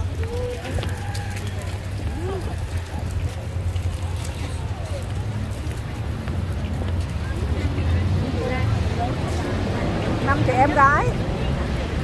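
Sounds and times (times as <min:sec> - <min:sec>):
people's voices: 0:00.0 - 0:12.0
road traffic rumble: 0:00.0 - 0:12.0.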